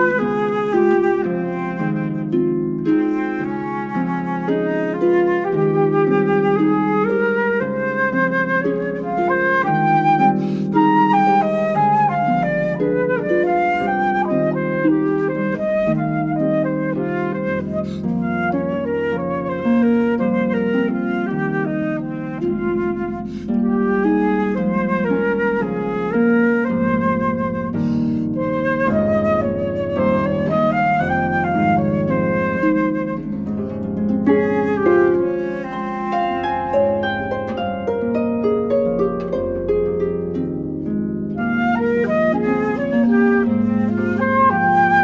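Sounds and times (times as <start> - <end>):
concert flute melody with vibrato: 0.0 - 37.8, 41.4 - 45.0
harp plucked chords: 22.4 - 45.0.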